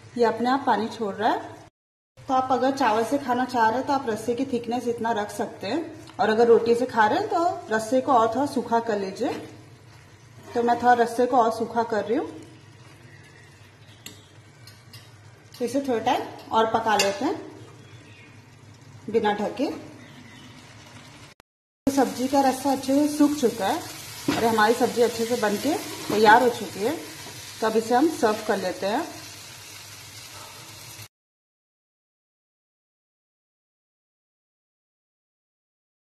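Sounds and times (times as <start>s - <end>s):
gravy sizzling: 6.5s - 31.1s
spatula stirring in a pan: 23.8s - 27.6s
ladle scraping frying pan: 25.6s - 26.4s.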